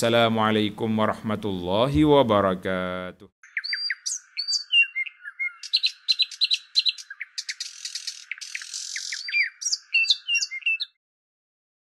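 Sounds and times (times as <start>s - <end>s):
birds chirping and whistling: 3.4s - 11.0s.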